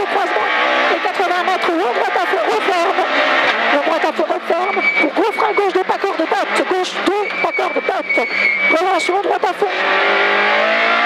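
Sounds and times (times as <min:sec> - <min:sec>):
rally car engine at full throttle: 0:00.0 - 0:11.0.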